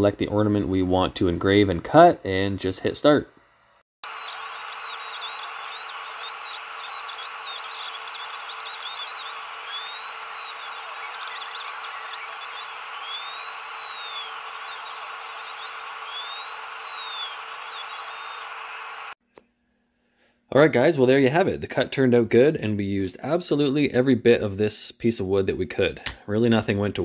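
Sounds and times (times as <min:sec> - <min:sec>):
fan hiss with low hum: 0:00.0 - 0:19.2
stepper motors whining: 0:04.0 - 0:19.2.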